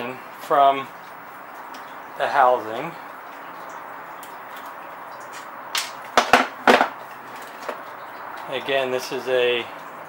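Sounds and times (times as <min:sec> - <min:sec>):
sharp knocks and clunks: 0:05.4 - 0:07.9.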